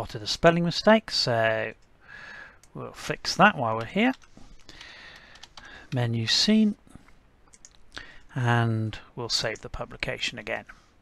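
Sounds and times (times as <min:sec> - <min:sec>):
faint keyboard keystrokes: 0:03.8 - 0:06.0, 0:07.5 - 0:08.3.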